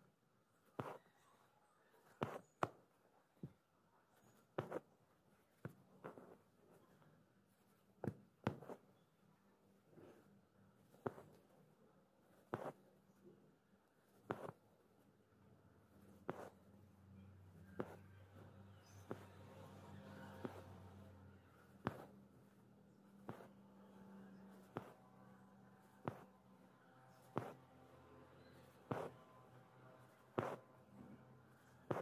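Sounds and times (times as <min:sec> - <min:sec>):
faint low hum: 0:00.0 - 0:32.0.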